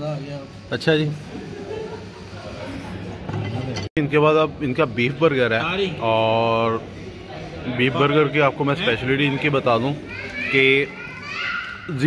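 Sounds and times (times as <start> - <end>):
children calling and chattering: 6.8 - 12.0
child's loud high call: 10.0 - 12.0.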